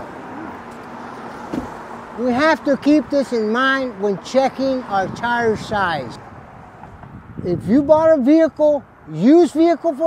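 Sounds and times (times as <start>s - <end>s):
road traffic noise: 0.0s - 10.0s
short thump: 1.5s - 1.8s.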